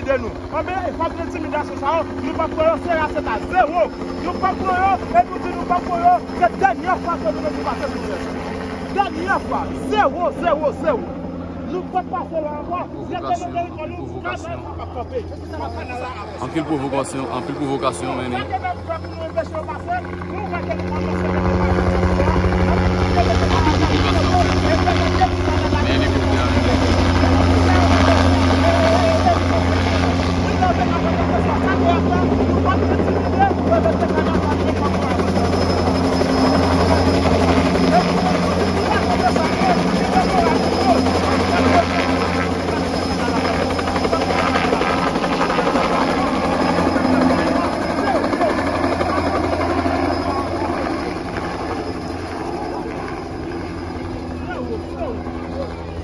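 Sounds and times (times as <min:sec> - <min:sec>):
helicopter rotor and engine: 0:00.0 - 0:56.0
people's voices: 0:00.0 - 0:56.0.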